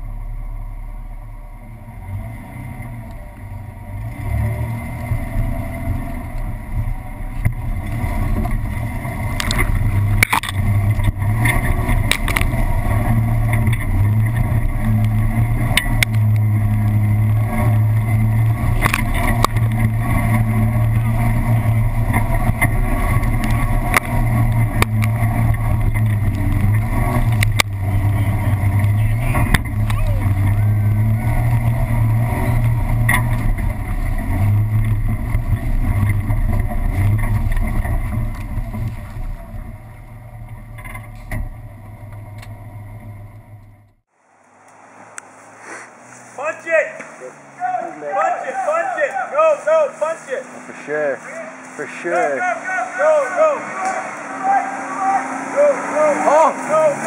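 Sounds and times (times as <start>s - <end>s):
engine running under load: 0.0s - 57.0s
tyres and chassis knocking on rocks: 7.4s - 27.9s.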